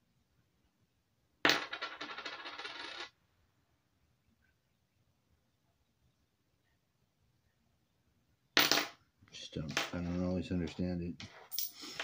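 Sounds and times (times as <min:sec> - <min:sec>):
coins clattering and jingling: 0:01.5 - 0:03.1, 0:11.3 - 0:12.0.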